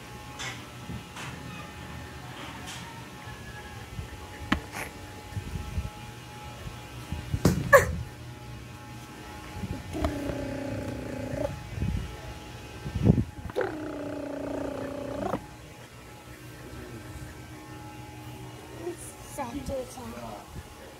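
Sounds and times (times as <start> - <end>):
dog making drawn-out calls: 10.0 - 11.6, 13.5 - 15.5.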